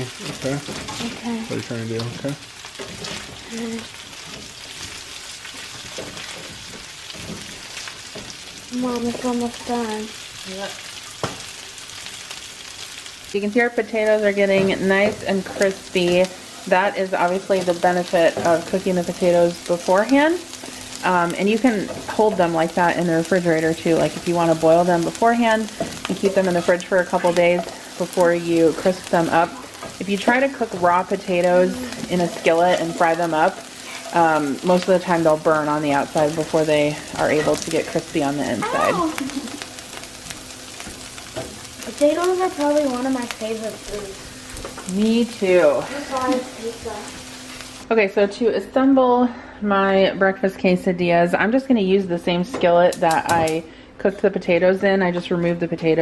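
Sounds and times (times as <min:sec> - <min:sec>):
food sizzling in pan: 0:00.0 - 0:48.0.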